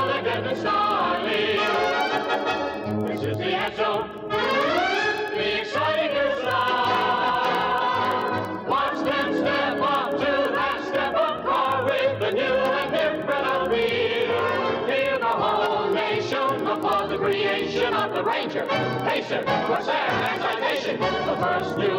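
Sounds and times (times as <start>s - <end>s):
choir singing with instrumental backing: 0.0s - 21.9s.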